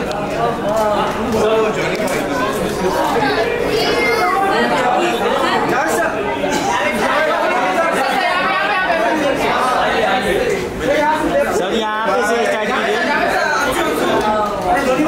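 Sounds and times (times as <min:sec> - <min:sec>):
chatter of people talking: 0:00.0 - 0:15.0.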